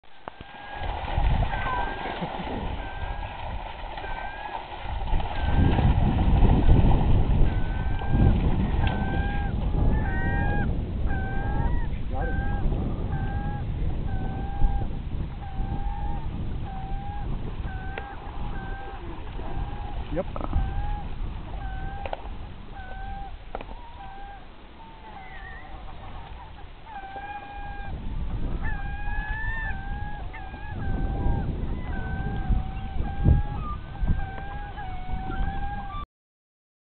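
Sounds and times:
rumbling wind: 0.0 - 36.0
water rumbling: 0.0 - 36.0
bird calling: 0.2 - 5.9, 6.6 - 36.0.

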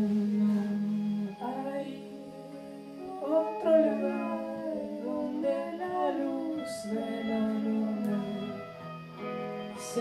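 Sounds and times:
live band with electric guitars: 0.0 - 10.0.

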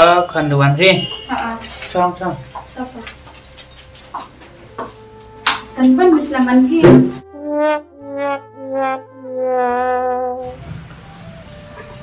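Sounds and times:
sad trombone sound effect: 7.1 - 10.6.

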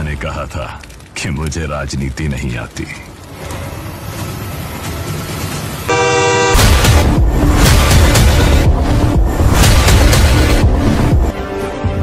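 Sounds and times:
film score music: 0.0 - 12.0
blaring horn-like blast: 5.9 - 7.0
loud booming hit: 6.5 - 10.7.

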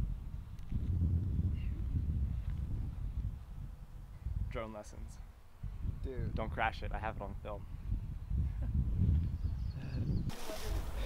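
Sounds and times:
steady outdoor hiss: 0.0 - 8.9, 10.3 - 11.0
wind buffeting microphone: 0.0 - 11.0.

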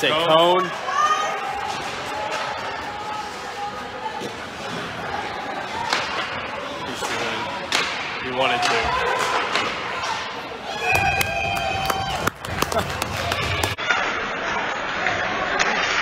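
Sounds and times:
crowd chatter: 0.0 - 16.0
puck and sticks knocking boards: 5.8 - 6.4, 7.0 - 9.9.

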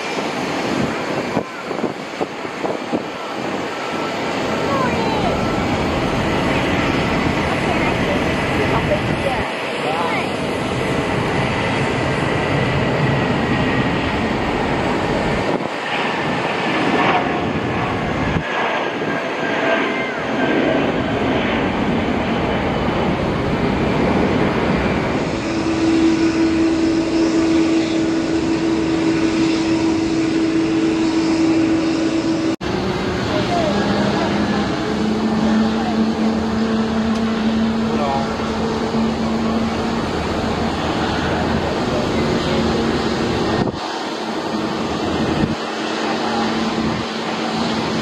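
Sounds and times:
jet engines roaring: 0.0 - 48.0.

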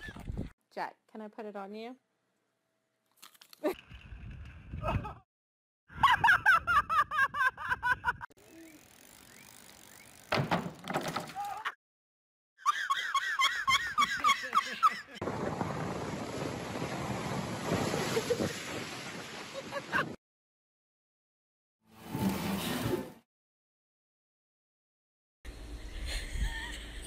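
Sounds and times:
person laughing hard: 4.8 - 5.2, 5.9 - 8.3, 12.6 - 15.2.

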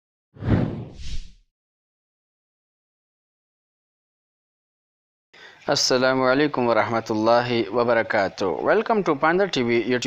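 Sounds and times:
whoosh sound effect: 0.4 - 1.4.

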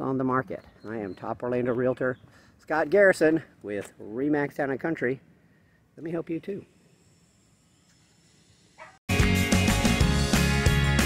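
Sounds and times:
distant dog yelp: 8.8 - 9.0.

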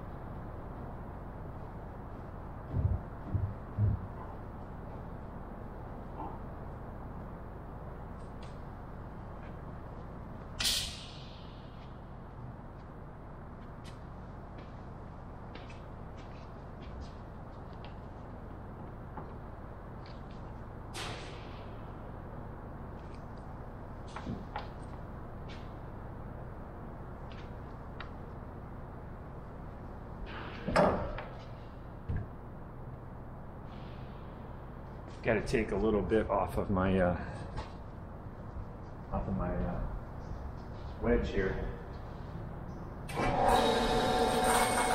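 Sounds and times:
workshop room noise: 0.0 - 44.9.

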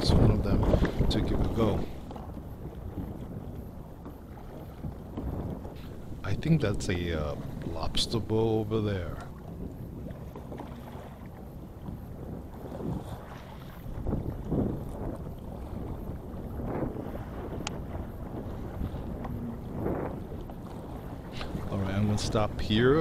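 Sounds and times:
water lapping against boat hull: 0.0 - 23.0
wind on microphone: 0.0 - 23.0
light click: 17.6 - 17.8.

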